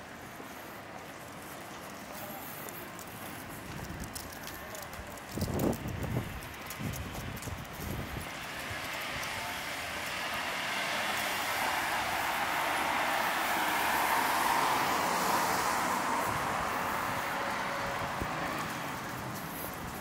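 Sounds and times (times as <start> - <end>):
wind thumps on microphone: 5.3 - 8.4
car passing: 8.1 - 20.0.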